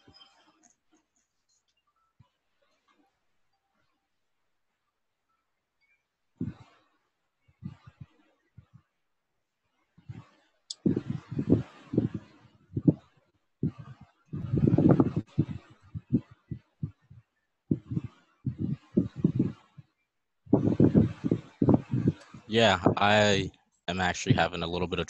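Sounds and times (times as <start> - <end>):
person talking indistinctly: 10.7 - 12.2, 20.6 - 25.0.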